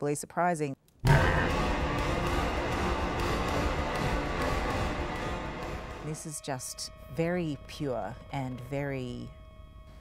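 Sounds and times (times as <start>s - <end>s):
dark dense film score music: 1.0s - 10.0s.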